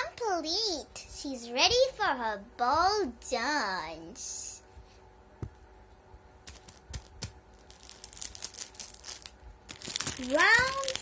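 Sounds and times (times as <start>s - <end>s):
plastic sheet crinkling: 6.4s - 11.0s.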